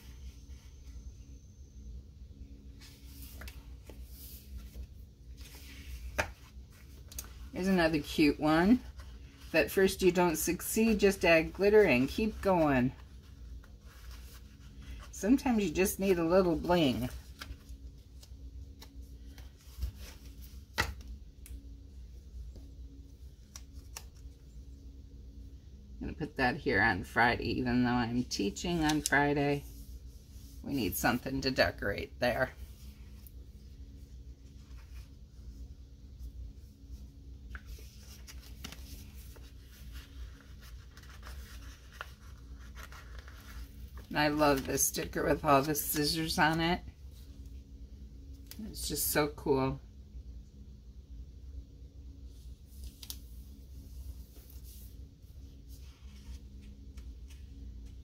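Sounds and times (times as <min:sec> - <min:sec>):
low steady hum: 0:00.0 - 0:58.0
fingers rustling paper sticker sheet: 0:37.5 - 0:46.3.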